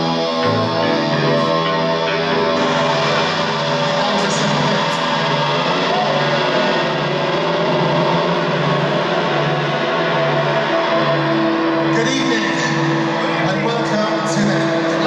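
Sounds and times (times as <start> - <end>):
live rock band playing: 0.0 - 15.0
pulsing bass guitar: 0.0 - 15.0.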